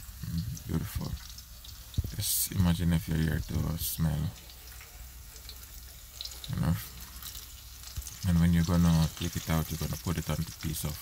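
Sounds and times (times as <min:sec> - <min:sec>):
food frying in oil: 0:00.0 - 0:11.0.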